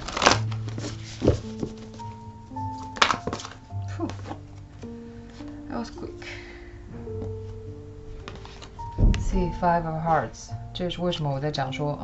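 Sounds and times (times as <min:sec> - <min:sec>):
cards riffling: 0:00.0 - 0:05.6, 0:08.2 - 0:09.0
soft background music: 0:00.0 - 0:12.0
dull knock: 0:08.9 - 0:09.7.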